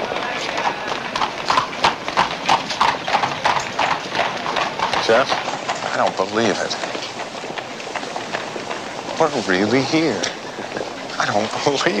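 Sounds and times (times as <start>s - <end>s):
footsteps: 0.0s - 12.0s
hoof clops: 0.0s - 12.0s
street hubbub: 0.0s - 12.0s.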